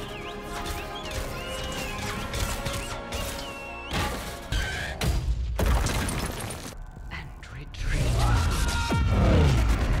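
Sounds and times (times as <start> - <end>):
film soundtrack music: 0.0 - 5.6.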